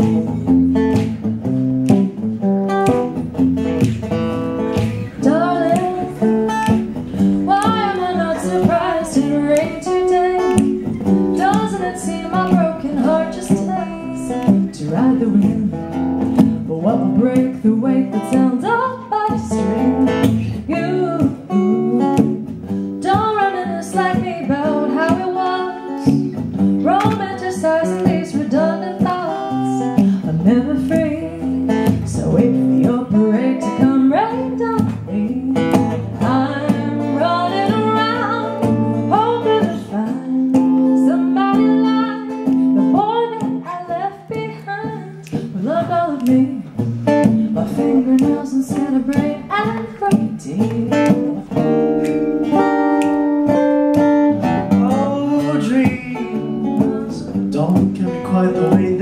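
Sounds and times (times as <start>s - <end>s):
acoustic guitar strumming: 0.0s - 59.0s
person singing: 4.8s - 22.4s, 47.4s - 51.8s, 54.7s - 59.0s.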